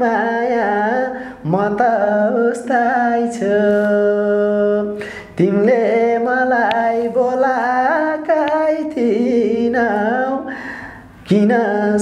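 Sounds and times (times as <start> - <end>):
man singing unaccompanied: 0.0 - 10.6, 11.2 - 12.0.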